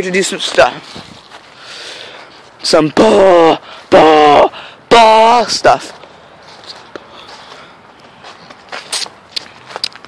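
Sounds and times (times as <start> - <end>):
footsteps crunching on snow and leaves: 0.0 - 2.8, 5.7 - 10.0.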